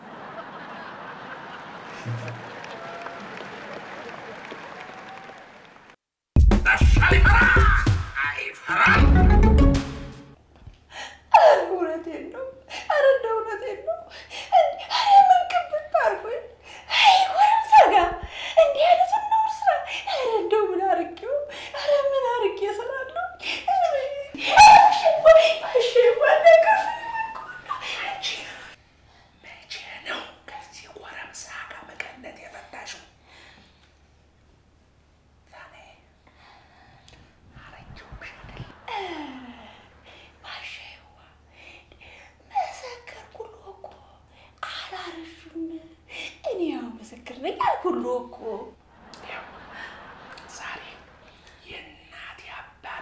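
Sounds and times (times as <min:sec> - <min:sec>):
man whispering: 0:08.2 - 0:08.8, 0:37.5 - 0:38.8.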